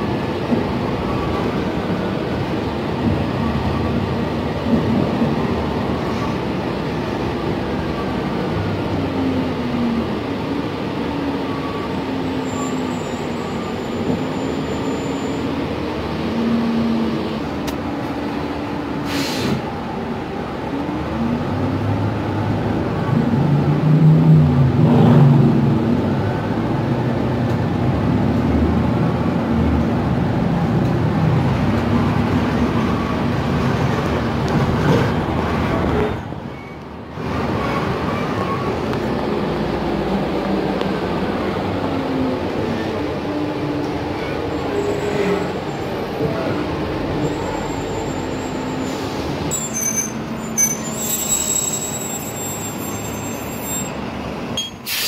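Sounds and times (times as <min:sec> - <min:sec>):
bus engine running: 0:00.0 - 0:55.0
road noise: 0:00.0 - 0:55.0
short hiss: 0:19.1 - 0:19.6.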